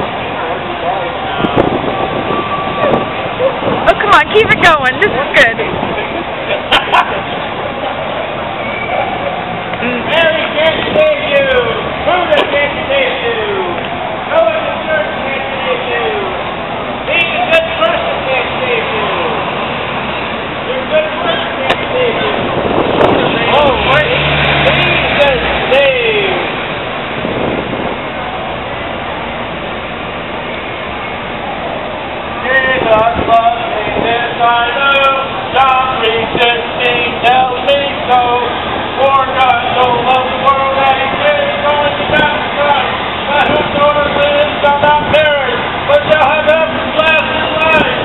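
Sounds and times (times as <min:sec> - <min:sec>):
faint voices talking: 0:00.0 - 0:48.0
road traffic going by: 0:00.0 - 0:48.0
vehicle engine humming: 0:00.0 - 0:48.0.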